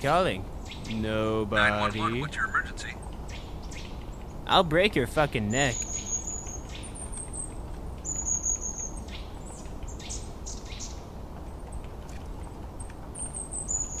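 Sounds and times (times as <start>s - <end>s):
low background hiss: 0.0s - 14.0s
small birds chirping: 0.0s - 14.0s.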